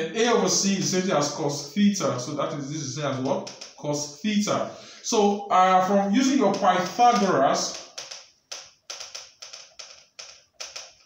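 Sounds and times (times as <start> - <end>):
marker writing on whiteboard: 3.2 - 4.0, 6.2 - 11.0.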